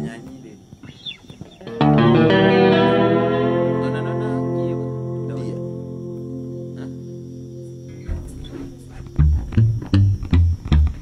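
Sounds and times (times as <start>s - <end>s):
guitar riff of low plucked notes: 1.6s - 11.0s
held guitar chord: 1.7s - 11.0s.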